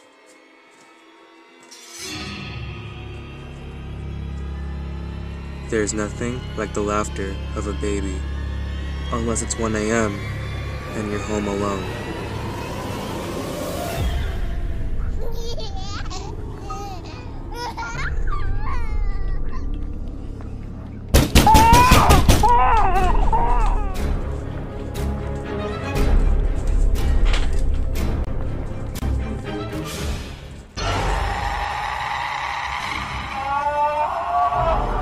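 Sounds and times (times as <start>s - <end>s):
low droning music: 0.0s - 35.0s
baby laughing and babbling: 15.2s - 19.7s
loud sustained screech: 30.8s - 34.9s.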